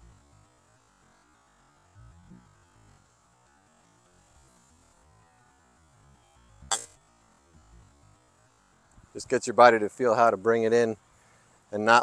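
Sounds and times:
faint background music: 0.0s - 12.0s
golf club striking ball: 6.6s - 7.0s.

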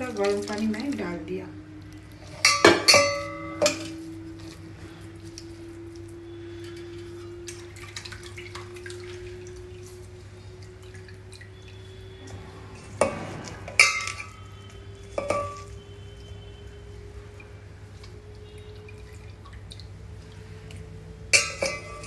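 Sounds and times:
steel bowl clanking: 0.0s - 1.4s, 2.2s - 16.9s, 21.3s - 22.0s
liquid dripping through strainer: 0.0s - 22.0s
faint rising hum: 1.0s - 22.0s.

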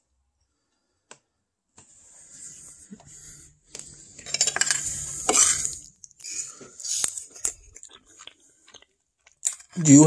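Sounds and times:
metal spoon scraping a plate: 4.2s - 6.6s.

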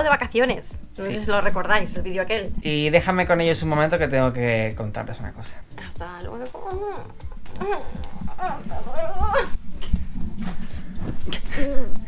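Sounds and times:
person's gliding high-pitched vocalising: 6.4s - 9.6s.

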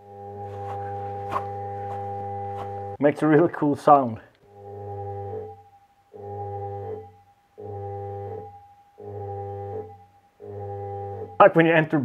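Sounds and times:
electromagnetic brake humming drone: 0.0s - 3.0s, 4.4s - 11.5s
person speaking: 3.0s - 4.4s, 11.4s - 12.0s.

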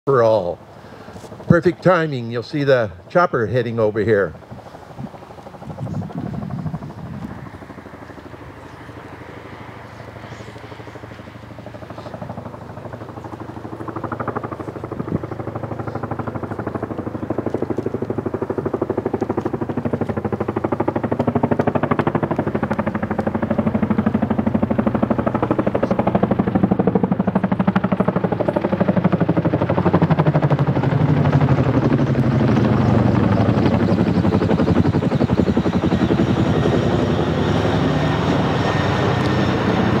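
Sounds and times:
helicopter rotor thudding: 10.6s - 40.0s.

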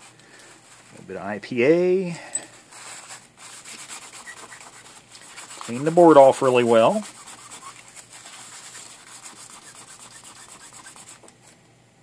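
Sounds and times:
tissue rubbing circuit board: 2.7s - 11.2s.

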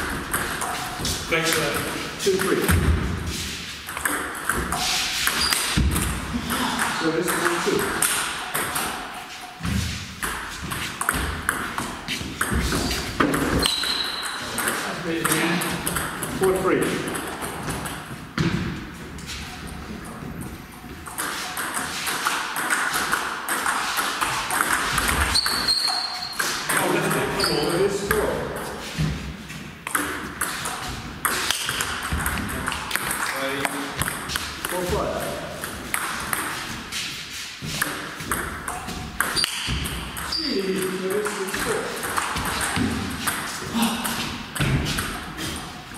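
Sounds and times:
people talking: 1.3s - 2.9s, 6.4s - 8.0s, 14.6s - 17.1s, 26.7s - 28.7s, 33.2s - 34.0s, 34.6s - 35.6s, 40.3s - 42.1s.

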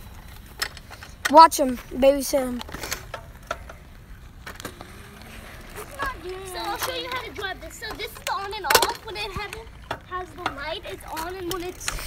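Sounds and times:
small wheels rolling over gravel: 0.0s - 12.0s.

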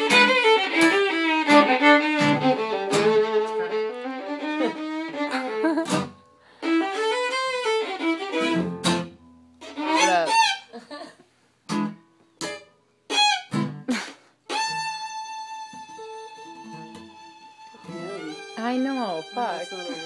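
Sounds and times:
fiddle bowing: 0.0s - 10.7s, 12.5s - 13.8s, 14.5s - 20.0s
acoustic guitar: 0.0s - 20.0s
laughter: 4.6s - 6.0s, 10.7s - 11.3s, 13.8s - 14.4s.

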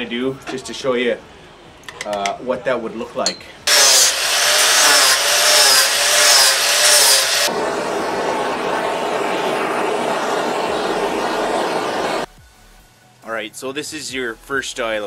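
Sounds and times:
angle grinder cutting wood: 3.7s - 12.3s
handheld torch hissing: 3.7s - 12.3s.

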